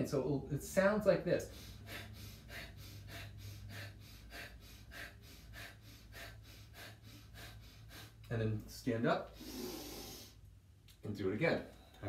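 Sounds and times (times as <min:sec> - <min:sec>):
man exhaling sharply through nose: 0:09.3 - 0:10.4.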